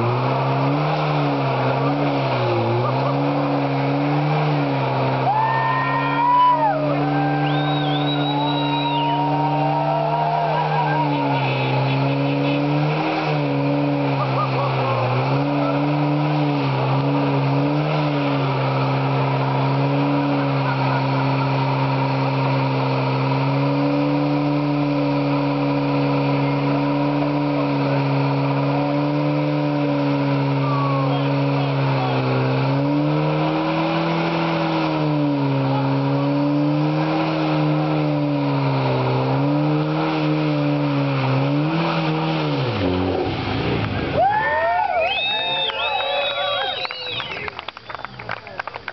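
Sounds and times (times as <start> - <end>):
car engine at high revs: 0.0 - 48.9
tyres scrubbing pavement: 6.8 - 30.6.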